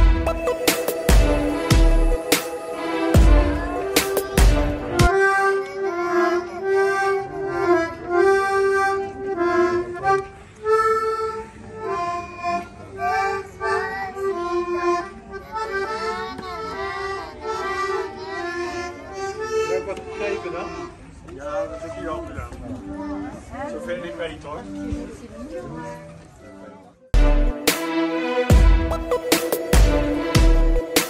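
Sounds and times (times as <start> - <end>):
accordion playing a melody: 0.0 - 22.2, 27.1 - 31.0.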